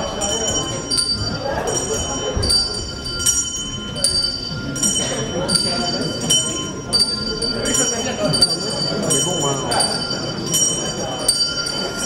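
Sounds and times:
bell-like ringing strikes: 0.0 - 12.0
crowd murmur in a hall: 0.0 - 12.0.

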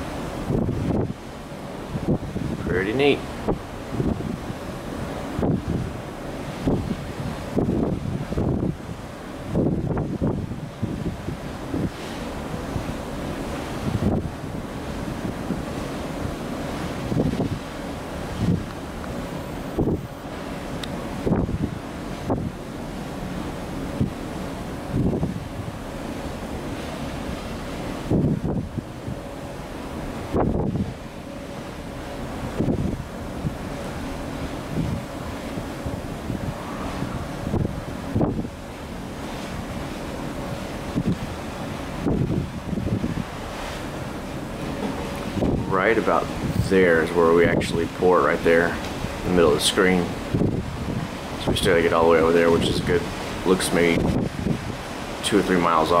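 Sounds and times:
steady low rumble: 0.0 - 56.0
wind buffeting microphone: 0.0 - 56.0.

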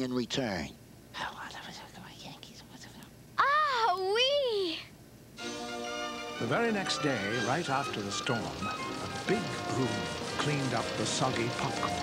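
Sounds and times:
man whispering: 1.1 - 3.0
girl exclaiming: 3.4 - 4.9.

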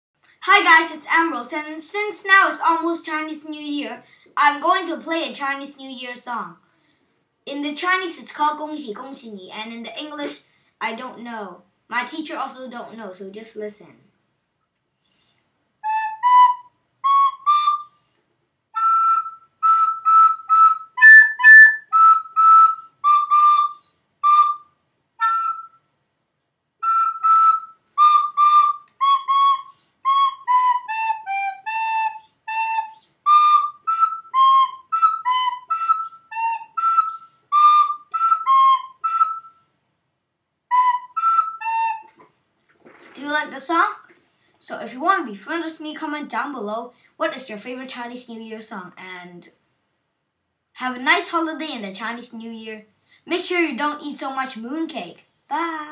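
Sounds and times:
recorder playing a simple melody: 15.8 - 18.1, 18.7 - 25.9, 26.8 - 39.7, 40.7 - 42.2.

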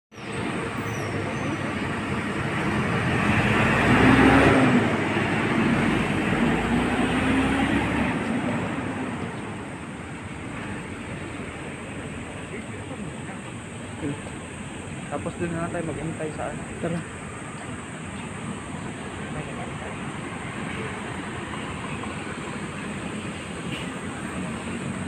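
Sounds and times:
bus driving past: 0.2 - 25.0.

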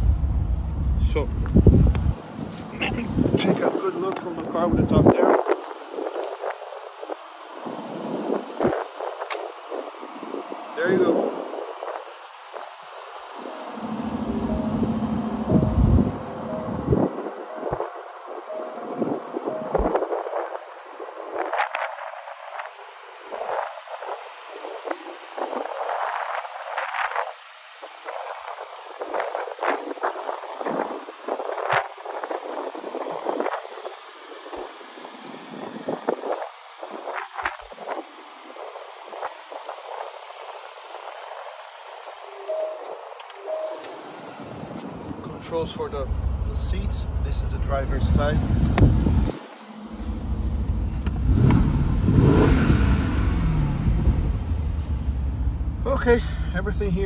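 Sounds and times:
wind gusting on microphone: 0.0 - 55.9
microphone handling rustle: 0.8 - 3.4.

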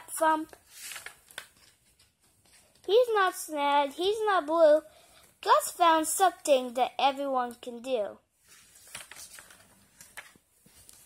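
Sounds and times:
paper page turning: 0.5 - 2.9, 8.4 - 11.0.

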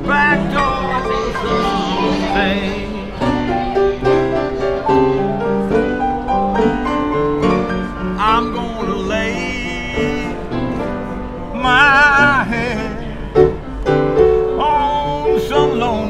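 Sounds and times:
slow blues piano: 0.0 - 16.0.

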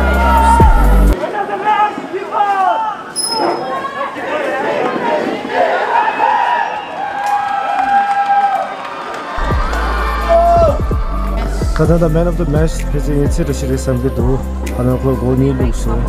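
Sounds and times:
music with heavy bass: 0.0 - 1.2, 9.4 - 14.8
players shouting and cheering: 0.0 - 14.3.

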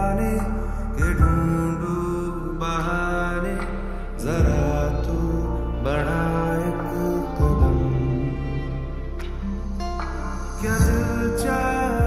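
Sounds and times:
slow film song instrumental: 0.0 - 12.0.

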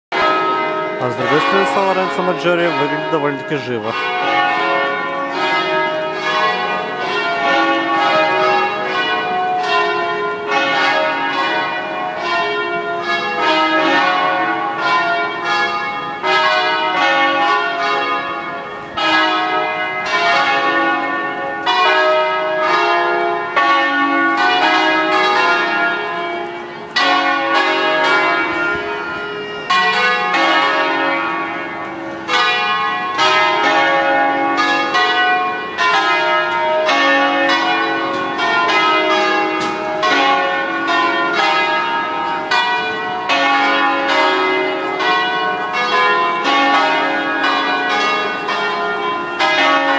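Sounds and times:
church bells ringing a peal: 0.1 - 49.9.

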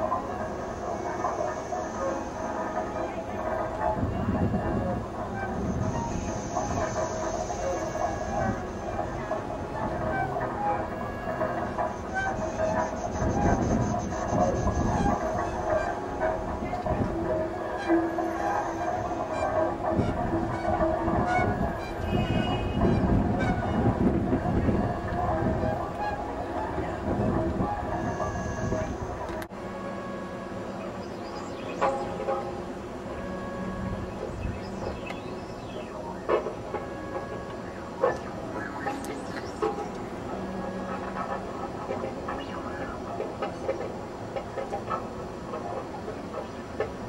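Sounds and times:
experimental cello and saxophone: 0.0 - 47.0.

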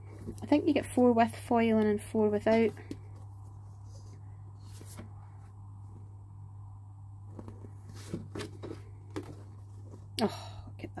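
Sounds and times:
steady low hum: 0.0 - 11.0
paper rustling: 2.5 - 5.5, 7.3 - 10.1.

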